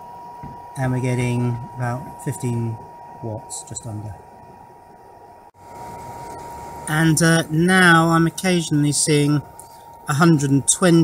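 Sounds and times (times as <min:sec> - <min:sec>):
outdoor background noise: 0:00.0 - 0:11.0
thin constant high tone: 0:00.0 - 0:11.0.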